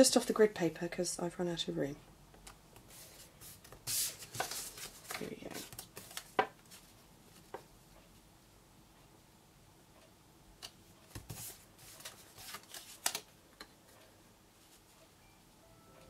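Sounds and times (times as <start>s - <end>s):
cardstock rustling: 3.4s - 6.8s.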